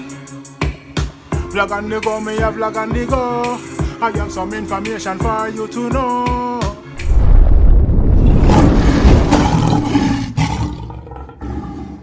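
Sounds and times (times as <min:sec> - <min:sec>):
lion roar: 0:07.0 - 0:12.0.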